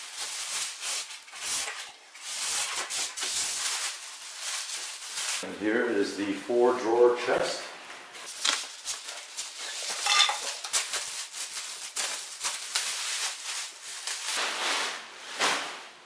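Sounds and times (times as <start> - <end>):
plastic wrap crinkling: 0.0 - 5.5, 8.2 - 15.8.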